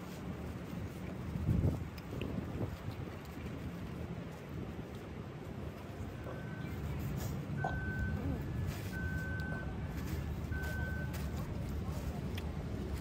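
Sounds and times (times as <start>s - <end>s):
low engine rumble: 0.0s - 13.0s
vehicle reversing alarm beeping: 6.0s - 11.8s.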